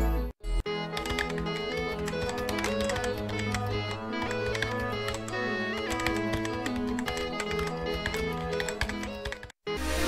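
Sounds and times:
background music: 0.0s - 10.0s
keyboard typing clicks: 0.8s - 9.6s.

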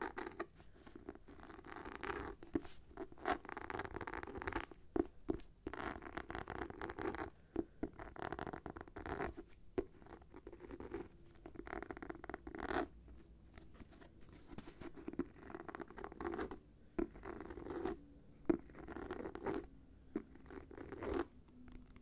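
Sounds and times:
fingernails scratching notebook cover: 0.0s - 4.7s, 5.3s - 13.0s, 13.8s - 22.0s.

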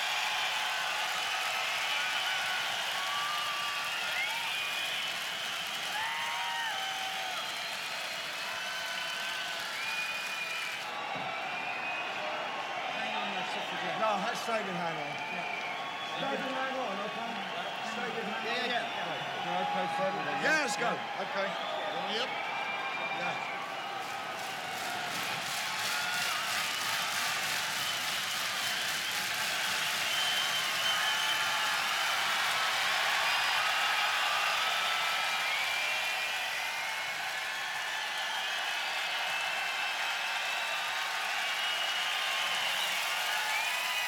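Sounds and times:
crowd clapping and cheering: 0.0s - 44.0s
whistles: 1.7s - 13.7s, 14.6s - 44.0s.

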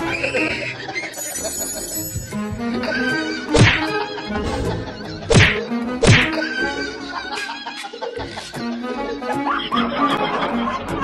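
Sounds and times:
background music: 0.0s - 11.0s
sharp whacks: 3.5s - 3.9s, 5.3s - 6.4s.

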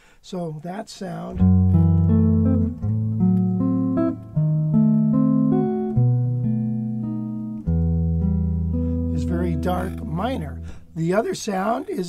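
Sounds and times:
jazz guitar chords: 1.3s - 11.4s.

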